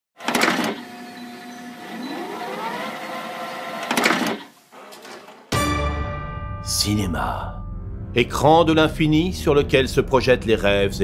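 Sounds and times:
loading mechanism whirring: 0:00.2 - 0:05.5.

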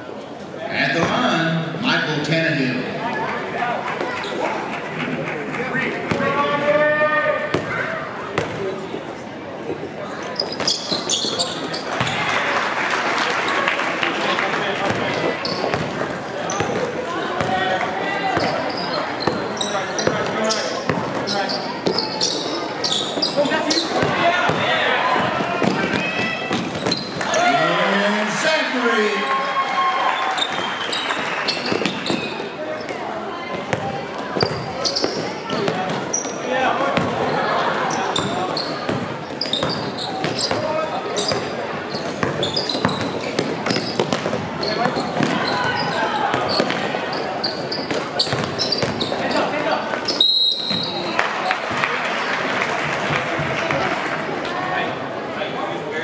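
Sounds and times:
basketball bouncing on court: 0:07.5 - 0:07.8, 0:10.6 - 0:12.3, 0:14.8 - 0:17.7, 0:18.3 - 0:22.0, 0:23.1 - 0:27.3, 0:33.5 - 0:36.2, 0:36.9 - 0:37.2, 0:38.2 - 0:46.9, 0:47.7 - 0:49.2.

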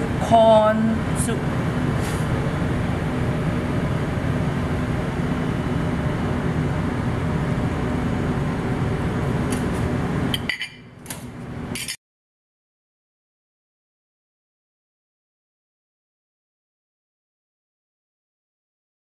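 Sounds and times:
kitchen room hum and hiss: 0:00.0 - 0:12.0.

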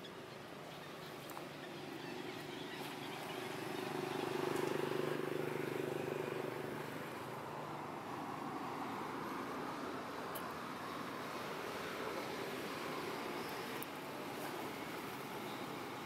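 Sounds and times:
vehicle engine droning past: 0:01.8 - 0:09.8.

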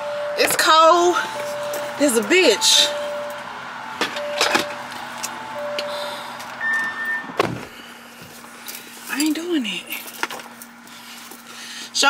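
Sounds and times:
soft electronic beeps: 0:00.0 - 0:07.4
low steady hum: 0:00.0 - 0:12.0.

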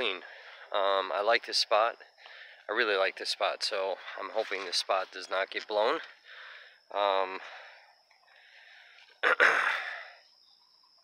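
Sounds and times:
man clearing his throat: 0:09.2 - 0:10.1.

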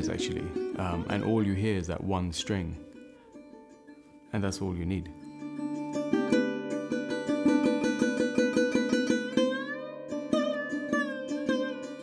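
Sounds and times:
sarod plucked notes: 0:00.0 - 0:12.0.

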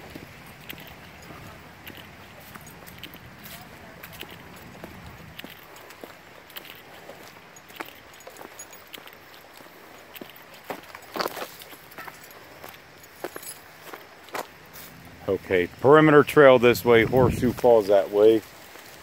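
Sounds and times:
footsteps on rocky trail and leaves: 0:00.0 - 0:19.0.

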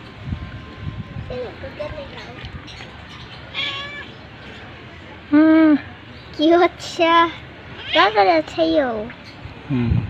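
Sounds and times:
cat meowing: 0:03.5 - 0:04.1, 0:07.8 - 0:08.2.

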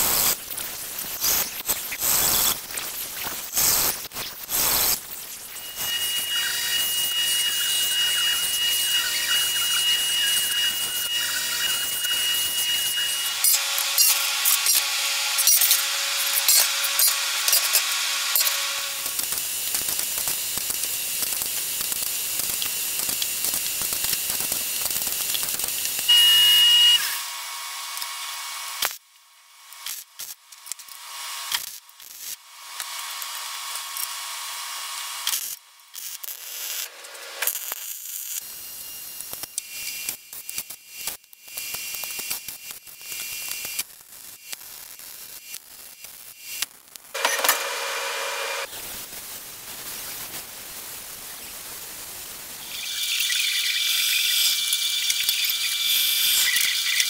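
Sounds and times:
hissing tool: 0:00.0 - 0:29.0, 0:46.5 - 0:57.0
angle grinder grinding steel: 0:01.2 - 0:19.5, 0:47.2 - 0:48.7.

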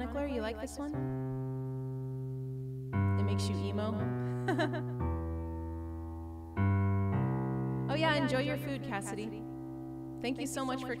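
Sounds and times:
electric keyboard chord: 0:00.9 - 0:11.0.

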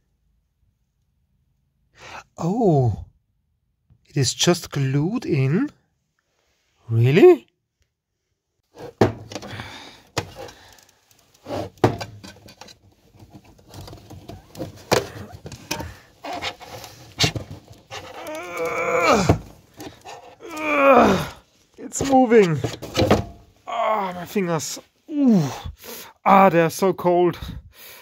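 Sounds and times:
man groaning: 0:02.2 - 0:03.1, 0:18.1 - 0:19.5, 0:20.4 - 0:21.4, 0:23.7 - 0:24.4, 0:25.1 - 0:26.4.

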